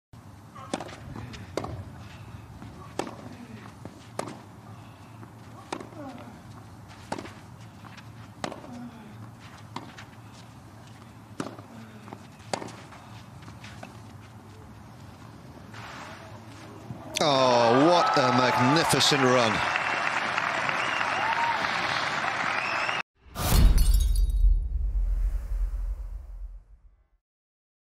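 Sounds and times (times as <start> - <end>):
racket striking tennis ball: 0.6 - 1.9, 2.6 - 4.5, 5.6 - 6.3, 7.0 - 8.8, 11.3 - 13.0
tennis ball bouncing on clay: 0.6 - 2.0, 2.6 - 4.6, 5.2 - 10.2, 10.9 - 14.0.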